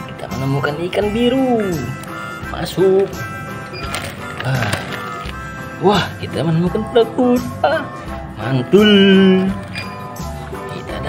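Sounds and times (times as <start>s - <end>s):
background music: 0.0s - 11.0s
plastic bag rustling: 3.8s - 5.5s.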